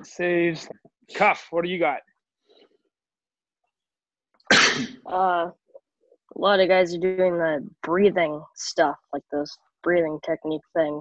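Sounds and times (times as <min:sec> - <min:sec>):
person coughing: 0:04.5 - 0:05.0.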